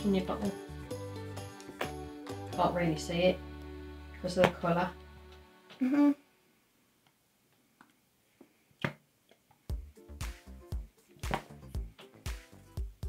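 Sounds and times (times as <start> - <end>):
music with steady beat: 0.0 - 5.8, 9.7 - 13.0
person humming: 5.7 - 6.3.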